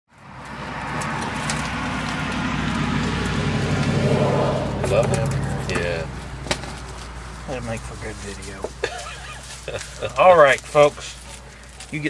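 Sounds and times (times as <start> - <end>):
low engine hum: 0.2 - 10.1.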